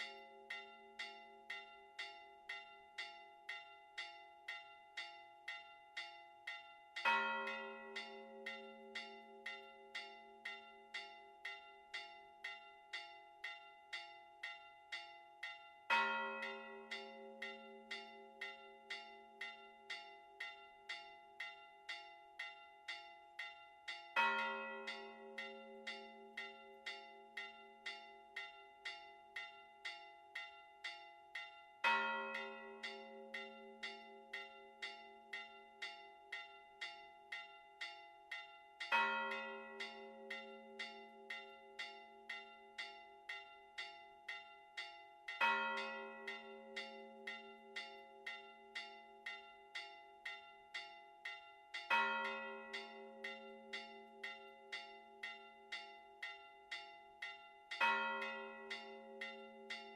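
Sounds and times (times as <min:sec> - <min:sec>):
small church bells ringing: 0:05.5 - 0:22.8, 0:23.4 - 0:30.8, 0:31.4 - 0:59.9.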